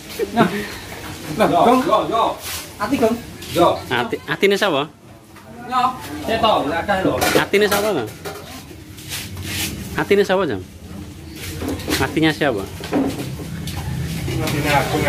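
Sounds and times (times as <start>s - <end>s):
metal utensils clinking on pans: 7.0s - 8.7s.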